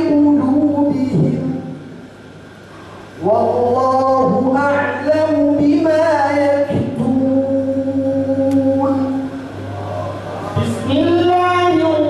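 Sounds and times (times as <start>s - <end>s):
man reciting melodically: 0.0s - 1.8s, 3.2s - 12.0s.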